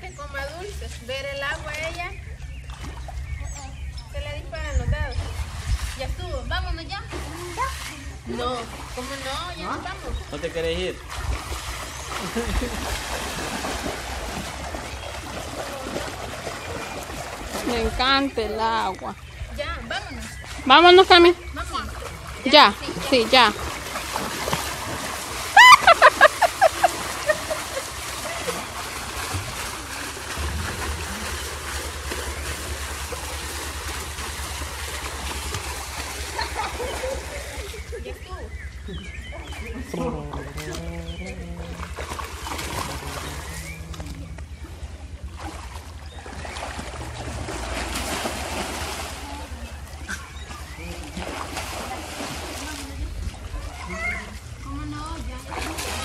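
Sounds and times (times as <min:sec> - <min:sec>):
pool water splashing: 0:00.0 - 0:56.0
people's voices: 0:17.6 - 0:23.8, 0:36.2 - 0:45.3, 0:49.0 - 0:56.0.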